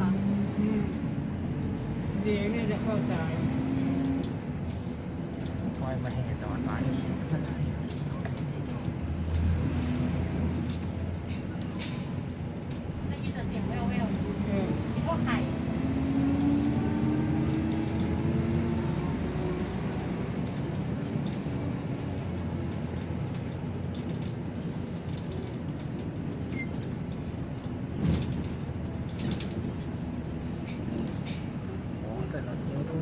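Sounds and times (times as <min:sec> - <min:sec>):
bus engine and road rumble: 0:00.0 - 0:33.0.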